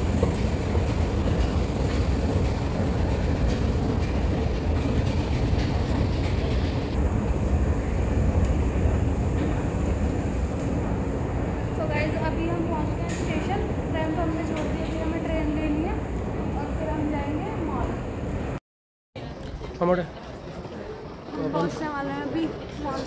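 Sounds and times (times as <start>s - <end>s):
train rumble inside carriage: 0.0s - 18.6s.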